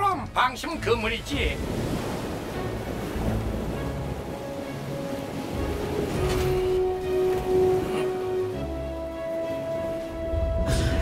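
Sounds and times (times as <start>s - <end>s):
background music: 0.0s - 11.0s
ocean waves rushing: 0.1s - 11.0s.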